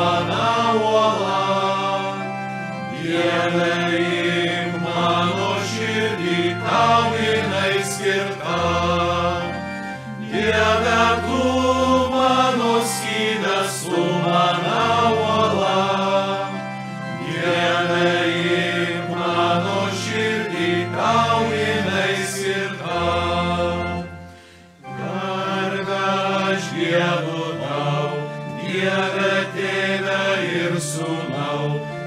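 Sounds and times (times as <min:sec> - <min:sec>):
choir singing a hymn: 0:00.0 - 0:32.0
sustained low accompanying notes: 0:00.0 - 0:32.0.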